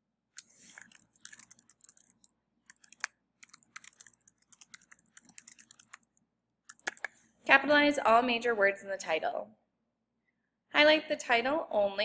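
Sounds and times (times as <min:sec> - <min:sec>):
typing on computer keyboard: 0:00.4 - 0:07.1.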